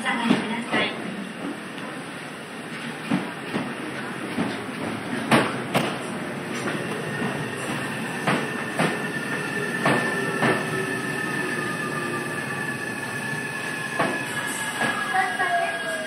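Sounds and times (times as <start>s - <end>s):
train braking whine: 6.7s - 16.0s.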